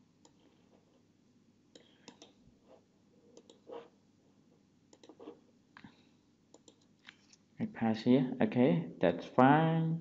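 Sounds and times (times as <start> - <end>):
keyboard and mouse clicks: 1.7 - 2.4, 3.4 - 3.9, 4.9 - 5.9, 6.5 - 7.4.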